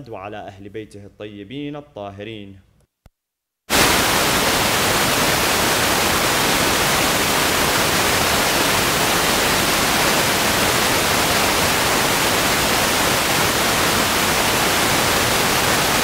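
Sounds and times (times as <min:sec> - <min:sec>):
loud static hiss: 0:03.7 - 0:16.0.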